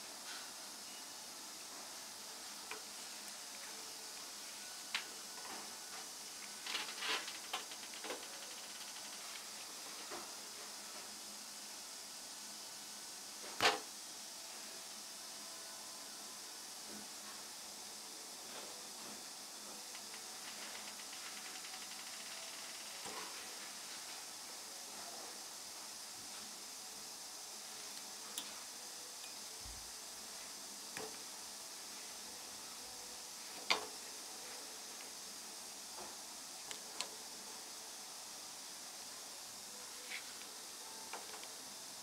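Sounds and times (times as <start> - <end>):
background hiss: 0.0 - 42.0.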